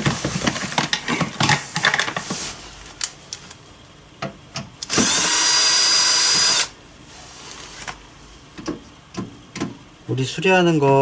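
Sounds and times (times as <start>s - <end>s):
cordless drill running: 4.8s - 6.8s.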